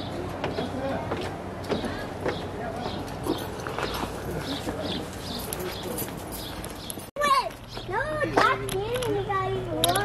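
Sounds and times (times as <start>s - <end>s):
footsteps on a hard surface: 0.4s - 5.0s.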